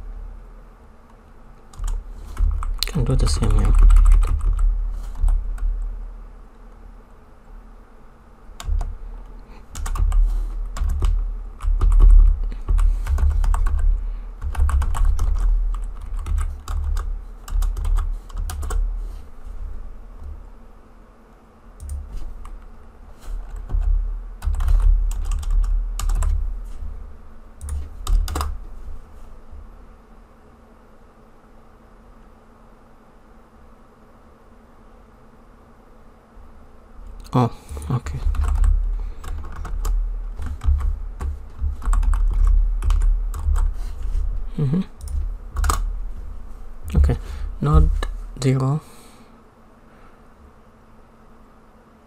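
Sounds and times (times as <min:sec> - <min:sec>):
typing on keyboard: 0:01.7 - 0:05.7, 0:09.7 - 0:18.8, 0:23.4 - 0:26.4, 0:27.6 - 0:28.6, 0:37.8 - 0:43.7, 0:45.0 - 0:45.8
low thuds of keystrokes: 0:01.7 - 0:05.9, 0:08.6 - 0:09.0, 0:09.7 - 0:18.8, 0:23.4 - 0:26.5, 0:37.7 - 0:44.2, 0:45.0 - 0:45.9.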